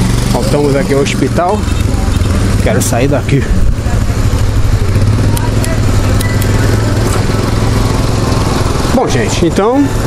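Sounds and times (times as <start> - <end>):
small engine droning: 0.0 - 10.0
traffic noise: 0.0 - 10.0.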